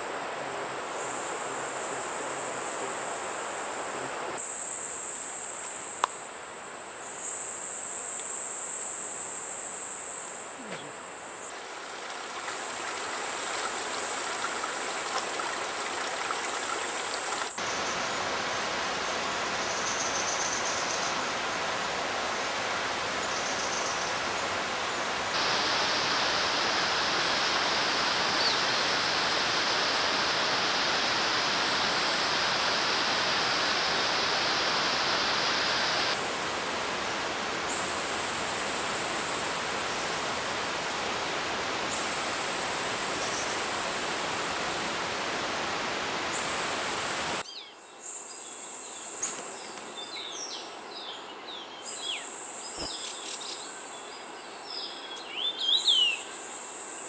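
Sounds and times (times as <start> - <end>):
mountain stream rushing: 11.0 - 47.4
high insect buzz: 51.9 - 53.8.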